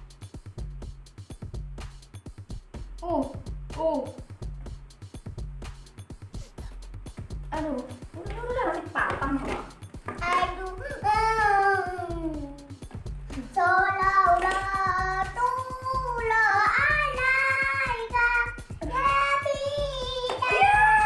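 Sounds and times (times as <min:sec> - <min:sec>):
song with sung melody and beat: 0:12.6 - 0:21.0.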